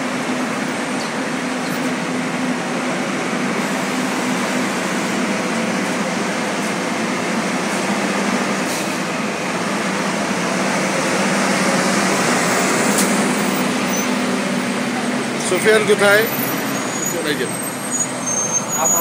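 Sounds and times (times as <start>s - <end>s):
bus engine idling: 0.0s - 19.0s.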